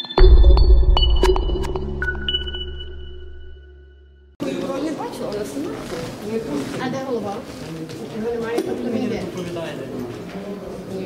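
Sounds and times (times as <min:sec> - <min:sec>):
high ringing tones: 0:00.0 - 0:04.4
deep bass hit: 0:00.2 - 0:04.3.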